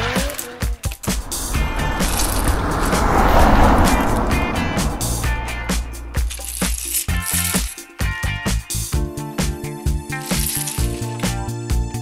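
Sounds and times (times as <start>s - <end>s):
rushing noise: 0.9s - 7.0s.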